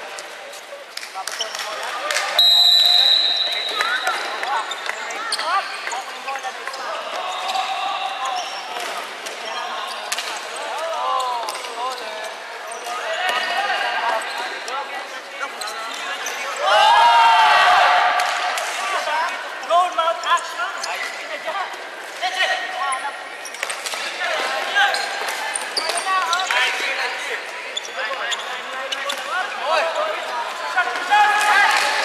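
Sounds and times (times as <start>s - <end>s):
sneakers squeaking: 0.1s - 16.6s, 22.9s - 31.1s.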